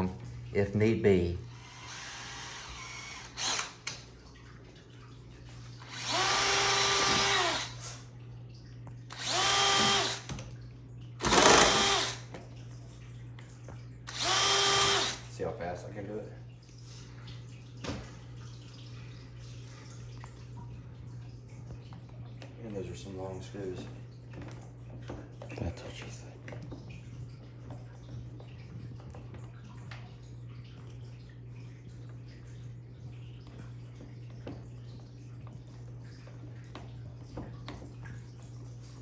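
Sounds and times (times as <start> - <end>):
cordless drill drilling into plastic: 1.5 - 4.0, 5.8 - 8.0, 9.1 - 10.3, 11.2 - 12.3, 14.1 - 15.3.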